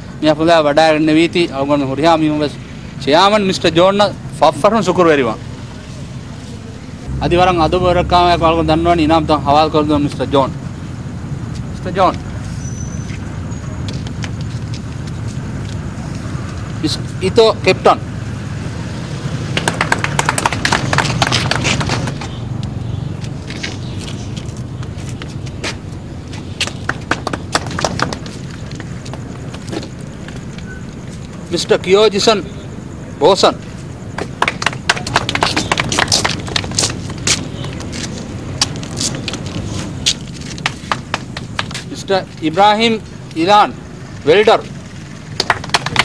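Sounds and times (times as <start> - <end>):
steady low hum: 4.1 - 45.8
man speaking: 7.1 - 10.6
audience clapping: 19.4 - 22.2, 26.6 - 28.9, 34.2 - 37.4, 40.6 - 41.8, 45.3 - 46.0.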